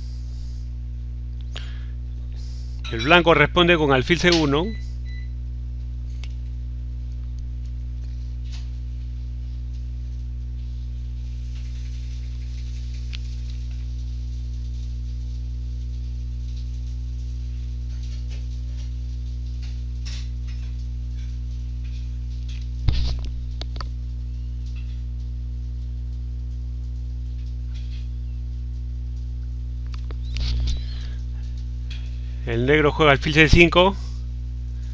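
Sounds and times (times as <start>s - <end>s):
electrical mains hum: 0.0s - 34.9s.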